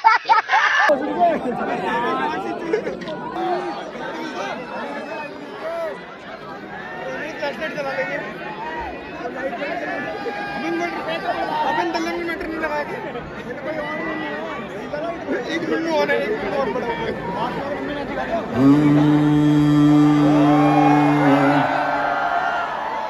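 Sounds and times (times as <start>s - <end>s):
crowd chatter: 0.9s - 23.0s.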